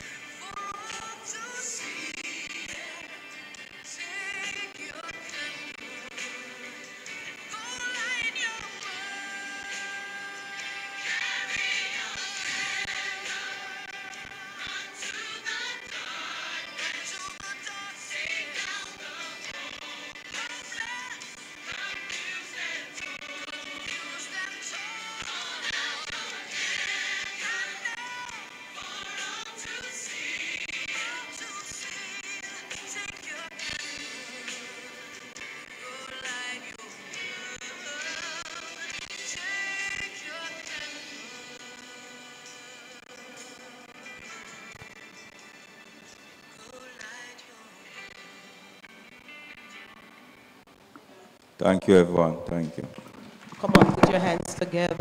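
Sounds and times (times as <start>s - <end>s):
person singing with accompaniment: 0.0s - 45.3s, 46.5s - 48.3s.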